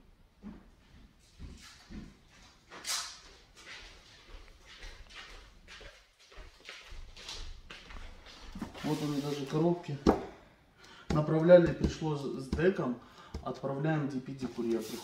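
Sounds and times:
cardboard scraping rustles: 0:08.5 - 0:09.6, 0:14.4 - 0:15.0.

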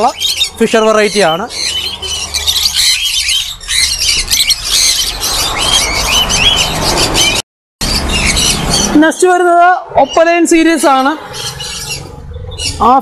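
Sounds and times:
lovebirds chattering: 0:00.0 - 0:13.0.

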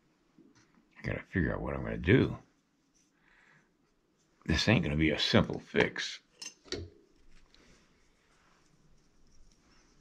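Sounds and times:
small handling noises: 0:02.1 - 0:04.5, 0:05.7 - 0:10.0.

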